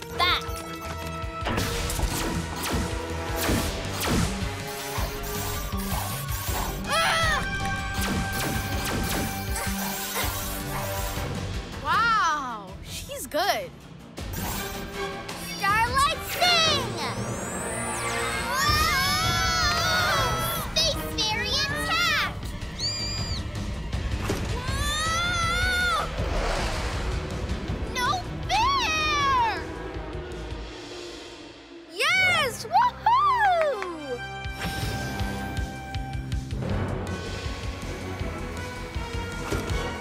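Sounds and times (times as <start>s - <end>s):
action background music: 0.0s - 40.0s
children's cries and screams: 6.8s - 7.6s, 18.1s - 23.5s, 24.5s - 26.2s, 28.0s - 29.7s, 32.0s - 34.2s.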